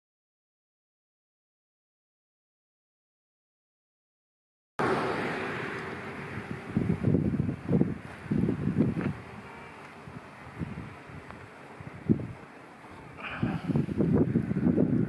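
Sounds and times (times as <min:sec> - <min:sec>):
wind buffeting microphone: 0:04.8 - 0:15.0.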